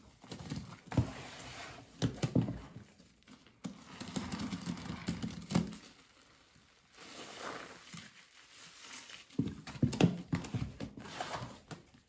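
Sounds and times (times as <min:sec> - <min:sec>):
gloved hand squelching in wet paste: 0:05.7 - 0:09.4.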